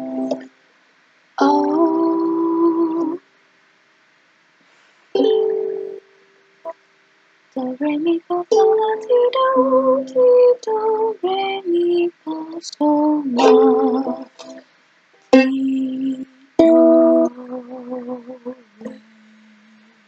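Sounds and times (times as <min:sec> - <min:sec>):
ukulele melody: 0:00.0 - 0:00.5, 0:01.4 - 0:03.2, 0:05.2 - 0:06.0, 0:07.6 - 0:14.6, 0:15.2 - 0:20.0.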